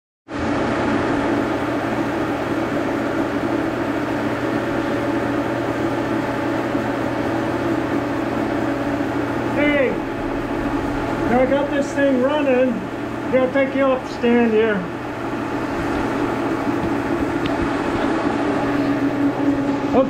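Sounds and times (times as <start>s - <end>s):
milling machine spindle whine: 0.9s - 20.0s.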